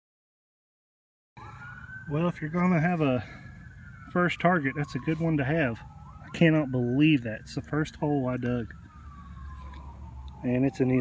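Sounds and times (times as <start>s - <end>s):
faint outdoor background noise: 1.4s - 11.0s.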